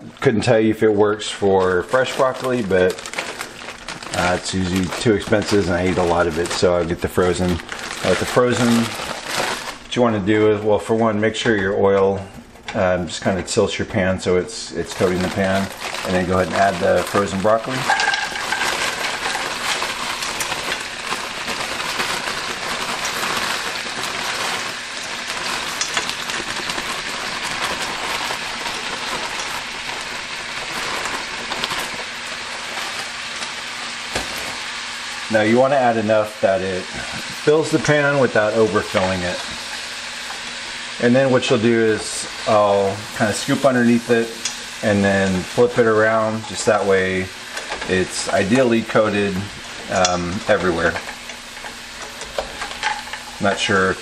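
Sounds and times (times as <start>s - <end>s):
broccoli sizzling in oil: 1.1s - 10.4s, 14.7s - 54.0s
spatula scraping pan: 17.8s - 20.9s.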